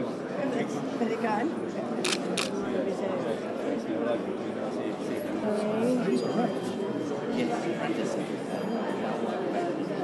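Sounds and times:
guests chattering and laughing: 0.0 - 10.0
camera shutter clicks: 2.0 - 2.5.

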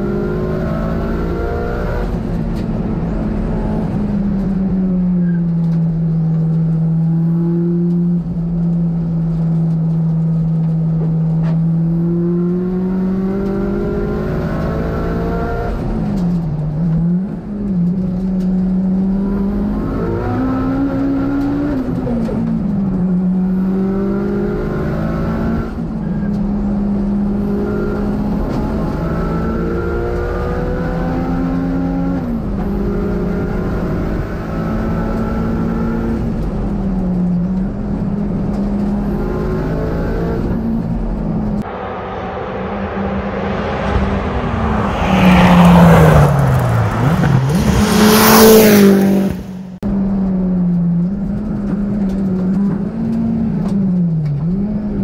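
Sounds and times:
race car engine revving: 41.6 - 49.8.

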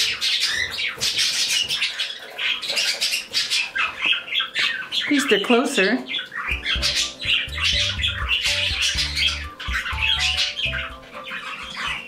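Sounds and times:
birds chirping and squawking: 0.0 - 12.0
background music with low notes: 6.5 - 12.0.

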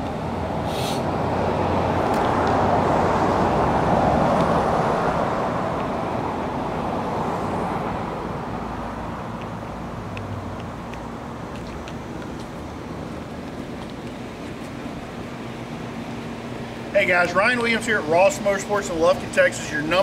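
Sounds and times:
vehicle passing by: 0.0 - 13.3.

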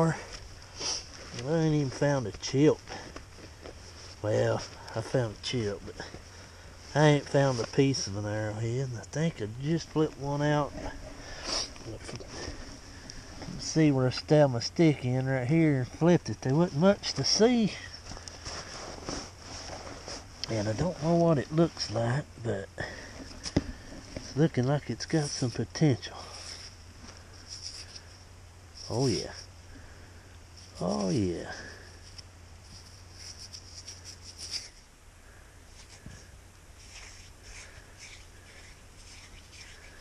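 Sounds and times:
insects buzzing: 0.0 - 16.0, 20.2 - 40.0
fingers scratching dirt off stone: 36.8 - 40.0.

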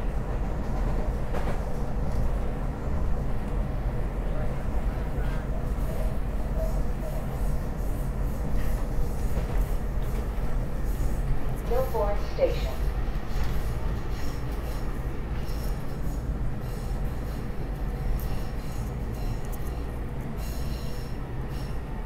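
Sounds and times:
train rumbling on rails: 0.0 - 22.0.

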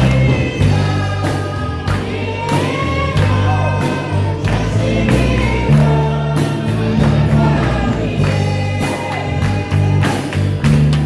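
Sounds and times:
accompanying music: 0.0 - 11.0
gospel choir singing: 0.0 - 11.0
hands clapping: 1.2 - 6.1, 6.9 - 11.0.

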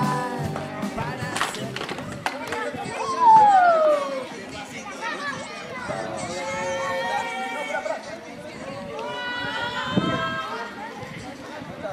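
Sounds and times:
children talking and calling: 0.0 - 11.9.

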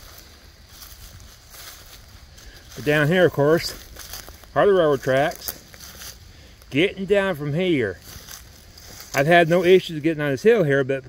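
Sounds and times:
rustling of dry leaves underfoot: 0.0 - 11.0.

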